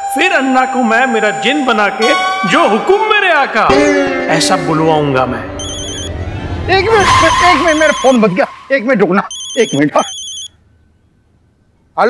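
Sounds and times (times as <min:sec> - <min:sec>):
phone ringtone beeping: 0:05.6 - 0:06.1, 0:07.6 - 0:08.2, 0:09.3 - 0:10.6.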